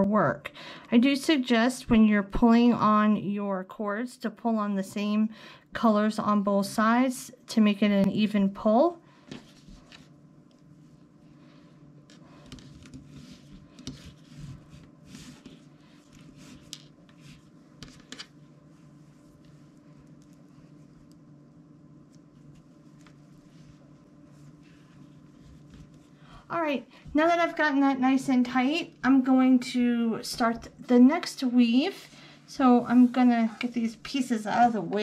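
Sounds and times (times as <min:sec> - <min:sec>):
steady low hum: 0:00.0 - 0:35.0
cord rustling and scraping: 0:09.2 - 0:21.3, 0:22.0 - 0:26.4.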